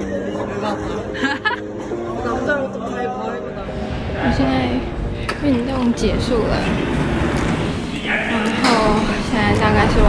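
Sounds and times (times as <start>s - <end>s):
woman speaking: 8.4s - 10.0s.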